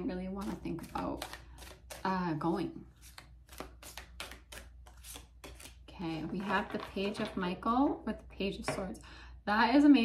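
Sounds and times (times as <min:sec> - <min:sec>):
cards being shuffled: 0:00.4 - 0:02.2, 0:02.9 - 0:06.8.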